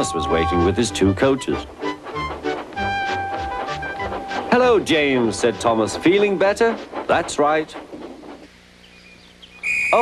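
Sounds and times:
high-pitched whistle blast: 0:09.6 - 0:10.0.

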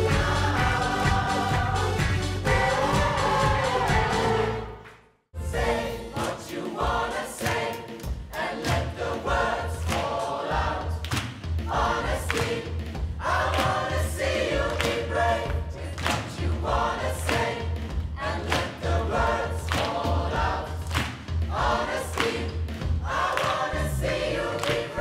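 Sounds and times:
gospel choir singing: 0:00.0 - 0:25.0.

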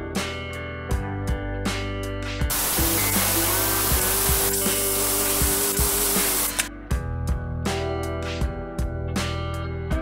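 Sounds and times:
compressed air hissing from valve: 0:02.5 - 0:06.7.

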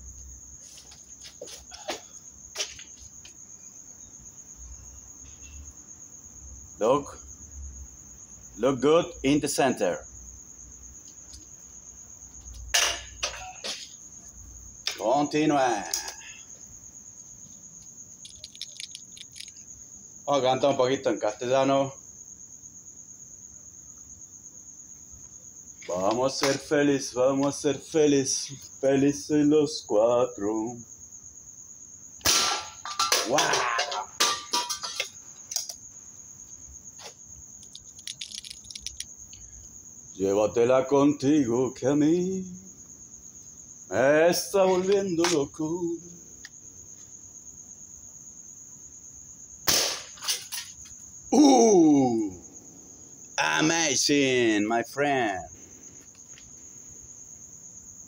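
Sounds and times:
crickets chirping: 0:00.0 - 0:58.0
targets knocking and falling: 0:18.2 - 0:19.6, 0:32.2 - 0:35.8, 0:37.6 - 0:39.1
rifle shot: 0:49.7 - 0:50.2.

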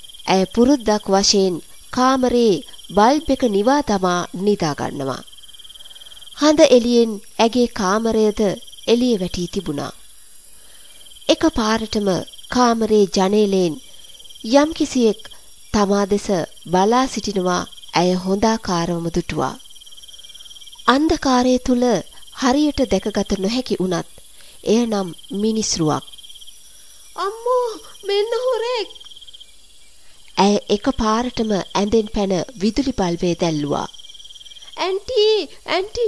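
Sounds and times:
crickets chirping: 0:00.0 - 0:36.0
person speaking: 0:00.3 - 0:05.2, 0:24.6 - 0:26.0, 0:27.2 - 0:29.0, 0:34.8 - 0:36.0.

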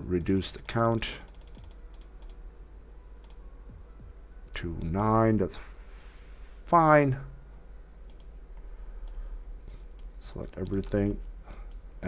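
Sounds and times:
faint keyboard keystrokes: 0:00.2 - 0:02.4, 0:09.0 - 0:11.8.

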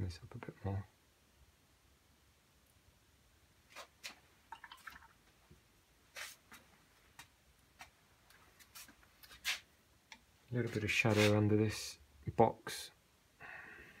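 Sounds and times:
paintbrush scratching on paper: 0:10.7 - 0:11.4.

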